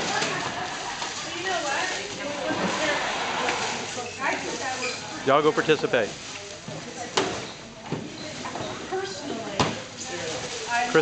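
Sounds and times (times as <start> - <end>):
people chattering: 0.0 - 11.0
cellophane crinkling: 10.1 - 11.0.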